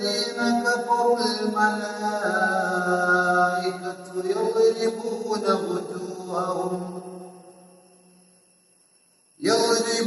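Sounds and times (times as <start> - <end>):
man chanting melodically: 0.0 - 7.4, 9.4 - 10.0.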